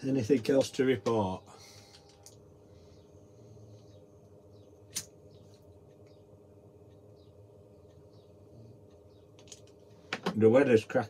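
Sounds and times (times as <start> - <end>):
steady low hum: 0.0 - 11.0
sharp click: 4.9 - 5.2.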